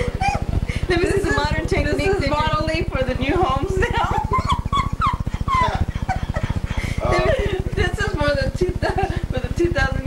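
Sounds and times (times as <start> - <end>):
steady low buzz: 0.0 - 10.0.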